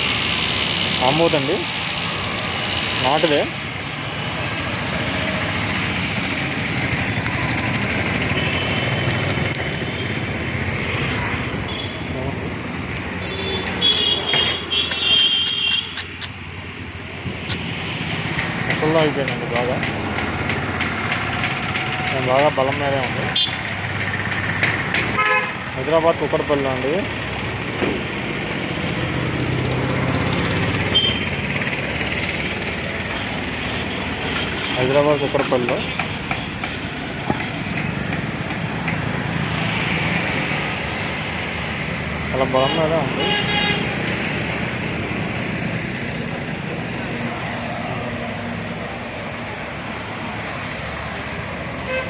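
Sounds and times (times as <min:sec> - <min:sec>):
street traffic: 0:00.0 - 0:52.0.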